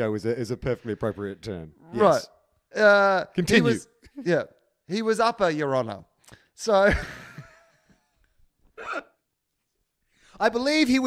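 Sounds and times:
man laughing: 6.8 - 7.7.

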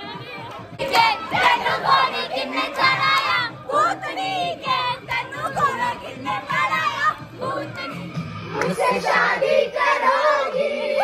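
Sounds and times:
young women shouting and singing: 0.0 - 8.2.

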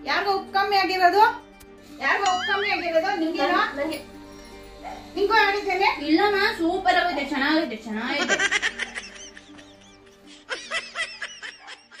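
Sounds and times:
background music with held notes: 0.0 - 12.0
high-pitched giggles: 8.2 - 12.0.

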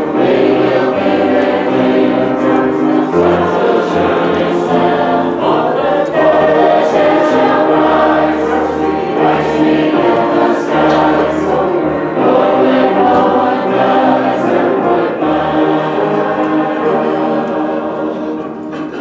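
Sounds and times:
choral singing: 0.0 - 19.0
instrumental accompaniment: 0.0 - 19.0.

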